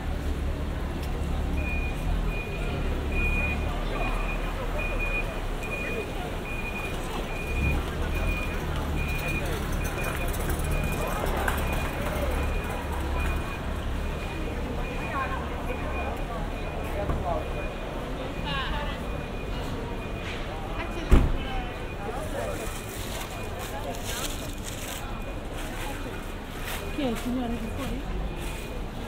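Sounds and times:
passers-by talking: 0:00.0 - 0:29.0.

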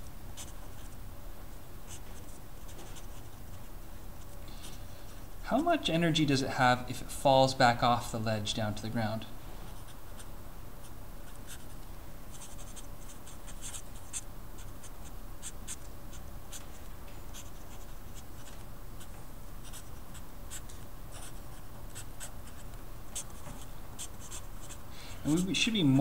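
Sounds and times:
steady low hum: 0:00.0 - 0:26.0
marker scratching on paper: 0:00.4 - 0:01.0, 0:11.3 - 0:15.8, 0:16.5 - 0:18.6, 0:19.6 - 0:25.5.

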